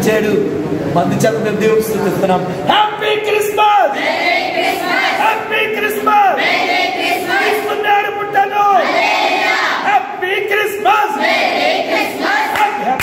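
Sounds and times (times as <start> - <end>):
girls chanting in unison: 3.9 - 5.3, 6.4 - 7.7, 8.8 - 9.9, 11.2 - 13.0.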